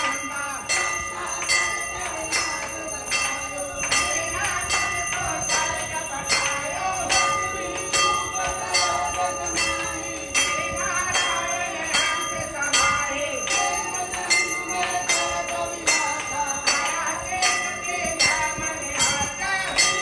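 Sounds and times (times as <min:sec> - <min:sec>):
temple bell ringing: 0:00.0 - 0:20.0.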